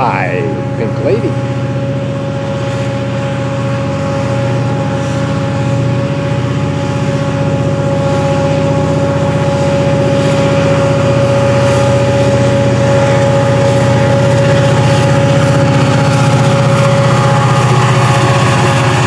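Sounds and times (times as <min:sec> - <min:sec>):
diesel locomotive passing: 0:00.0 - 0:19.0
high whine: 0:00.0 - 0:19.0.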